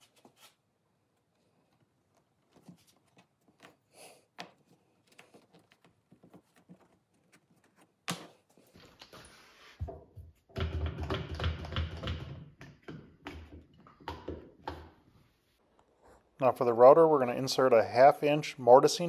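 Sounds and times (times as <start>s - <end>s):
rubbing and knocking on wood: 4.4s - 8.0s.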